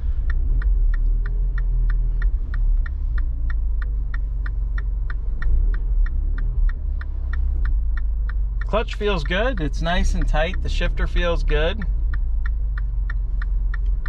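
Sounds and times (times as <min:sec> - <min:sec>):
car engine idling: 0:00.0 - 0:14.0
turn signal ticking: 0:00.0 - 0:14.0.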